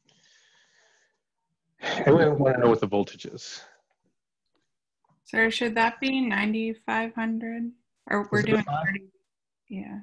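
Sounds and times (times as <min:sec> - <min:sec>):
breath into headset microphone: 0:00.0 - 0:01.2
man speaking: 0:01.8 - 0:03.7, 0:08.3 - 0:09.0.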